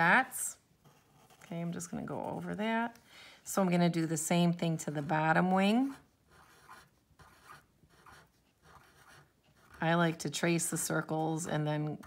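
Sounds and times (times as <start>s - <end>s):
marker drawing on paper: 0.8s - 2.5s, 4.9s - 10.6s.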